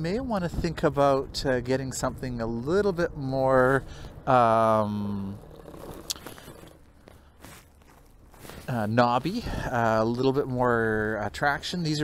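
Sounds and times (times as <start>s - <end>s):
trike tires rolling on pavement: 0.0s - 12.0s.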